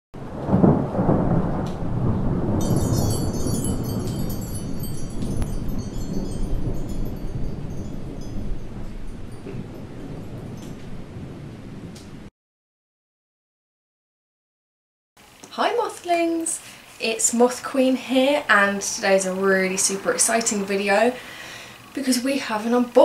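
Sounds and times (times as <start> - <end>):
rain-like wash: 0.2 - 12.3, 15.2 - 23.0
thunder rumble: 0.2 - 12.3
high shimmering chimes: 2.6 - 10.7.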